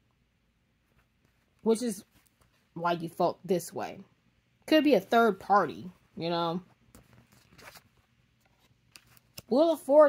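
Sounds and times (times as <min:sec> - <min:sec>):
cards scraping on blanket: 0:06.9 - 0:09.6.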